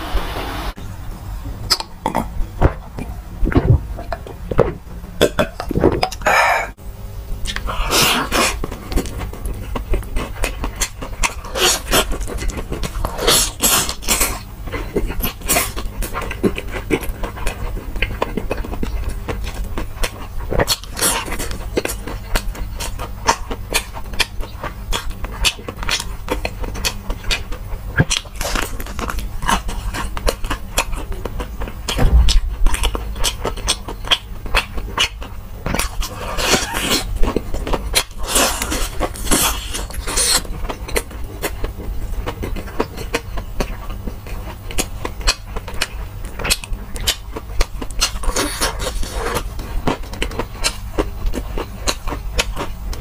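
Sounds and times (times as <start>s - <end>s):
steady low hum: 0.0s - 53.0s
open-mouth chewing crunches: 7.4s - 53.0s.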